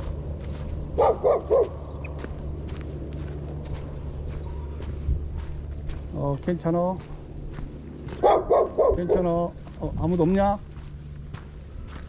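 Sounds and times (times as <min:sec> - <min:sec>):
dog barking: 0:01.0 - 0:01.9, 0:08.2 - 0:09.4.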